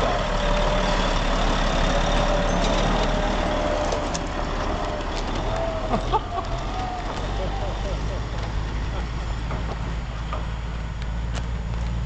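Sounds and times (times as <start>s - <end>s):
diesel truck engine droning: 0.0s - 12.0s.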